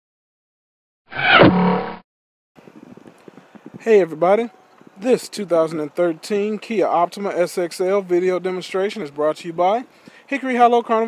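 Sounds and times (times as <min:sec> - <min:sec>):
swooping tone dropping in pitch: 0:01.2 - 0:02.0
outdoor background noise: 0:02.6 - 0:11.0.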